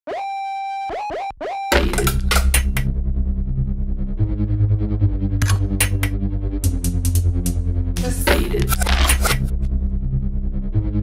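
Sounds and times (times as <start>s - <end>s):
heavy bass and drums: 6.6s - 9.6s.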